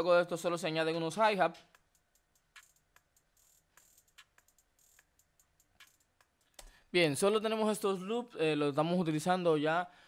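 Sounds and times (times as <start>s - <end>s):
faint drum loop ticks: 0.0s - 9.4s.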